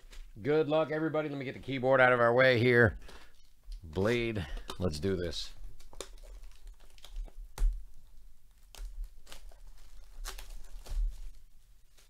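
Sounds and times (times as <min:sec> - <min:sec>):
sharp crackles: 0:03.0 - 0:12.0
shrink wrap tearing and crinkling: 0:03.1 - 0:12.0.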